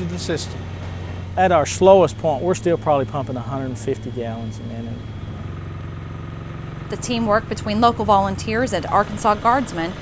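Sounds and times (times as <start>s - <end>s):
engine humming steadily: 0.0s - 10.0s.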